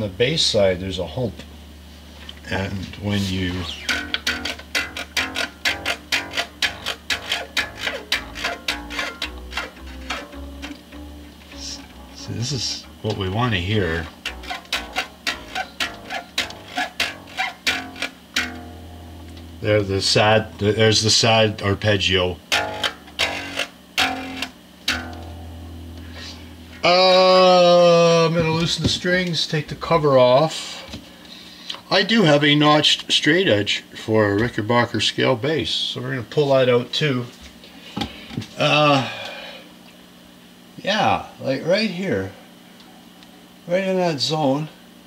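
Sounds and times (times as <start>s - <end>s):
electric bass strings plucked: 2.4s - 30.4s.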